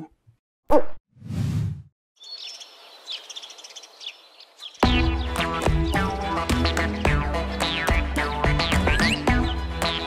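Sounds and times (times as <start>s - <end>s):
birds chirping: 2.2s - 10.0s.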